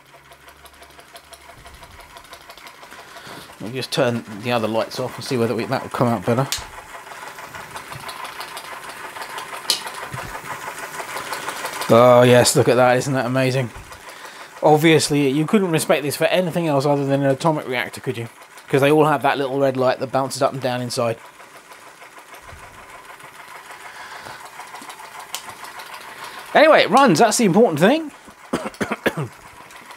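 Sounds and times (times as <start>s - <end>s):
toy steam engine running: 0.0s - 29.9s
sharp click: 6.5s - 6.8s.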